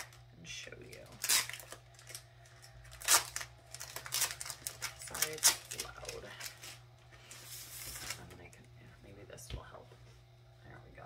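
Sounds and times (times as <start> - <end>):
steady low hum: 0.0 - 11.0
art print being handled: 0.9 - 8.4.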